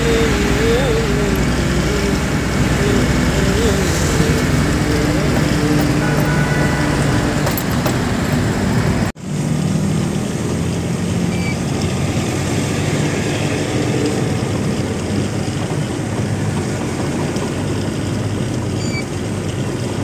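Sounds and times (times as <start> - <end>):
road noise: 0.0 - 20.0
truck engine running: 0.0 - 20.0.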